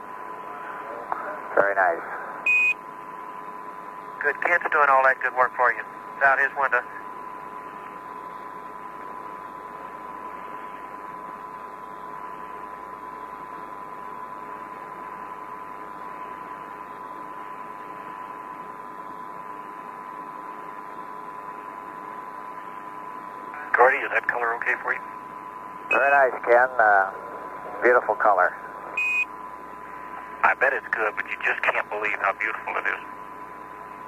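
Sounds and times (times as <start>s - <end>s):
radio link hiss: 0.4s - 2.4s, 4.2s - 7.0s, 23.5s - 25.1s, 25.9s - 29.0s, 29.8s - 33.2s.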